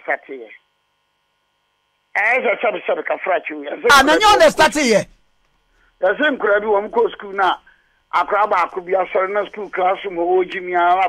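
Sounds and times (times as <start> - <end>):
faint electrical hum: 0.0 - 11.0
man's voice: 3.9 - 5.1.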